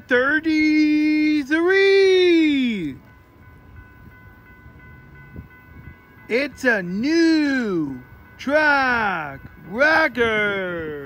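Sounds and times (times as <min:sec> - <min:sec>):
distant train low rumble: 0:00.0 - 0:11.0.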